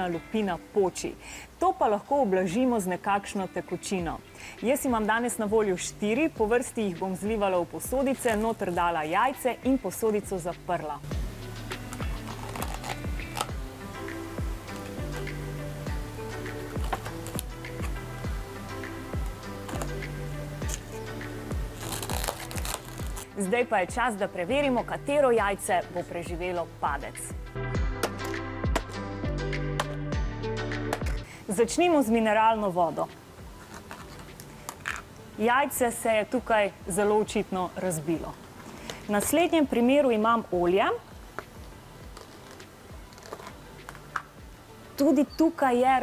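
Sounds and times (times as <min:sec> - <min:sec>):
background music with low beat: 0:04.8 - 0:31.3, 0:41.0 - 0:45.5.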